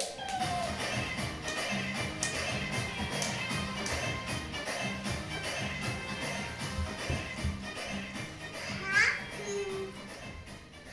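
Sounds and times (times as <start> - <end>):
background music: 0.0 - 10.9.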